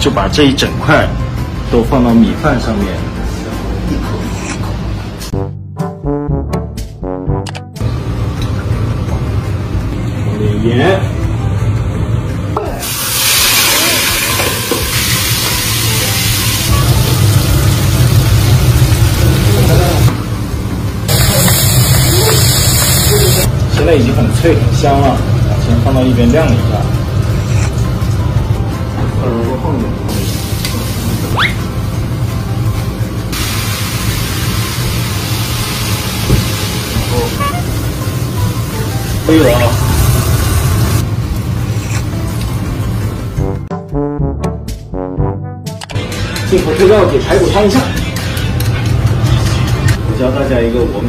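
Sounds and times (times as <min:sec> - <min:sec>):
background music: 0:00.0 - 0:21.2, 0:22.9 - 0:51.0
shrimp sizzling in hot oil: 0:12.8 - 0:20.1, 0:21.1 - 0:23.5, 0:33.4 - 0:37.3.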